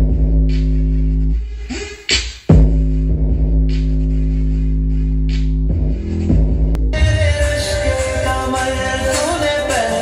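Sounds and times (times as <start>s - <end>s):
bass-heavy electronic music: 0.0s - 10.0s.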